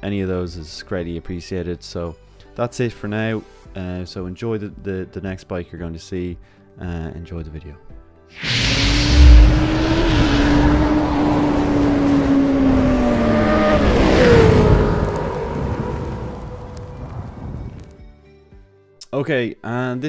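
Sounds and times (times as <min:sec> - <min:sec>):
motorcycle engine revving: 0:08.4 - 0:17.0.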